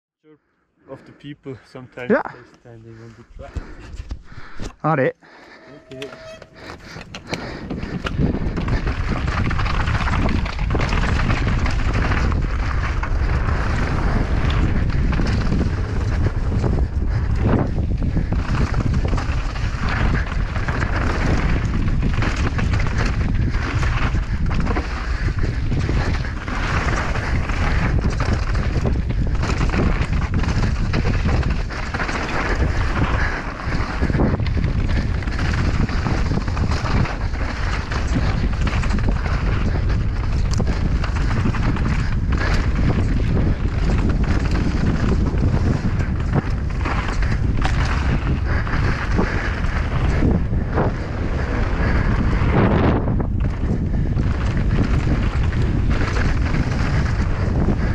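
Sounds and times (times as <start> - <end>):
wind buffeting microphone: 5.3 - 57.9
bike tyres rumbling on dirt: 6.1 - 57.9
bike clattering over bumps: 6.5 - 57.9.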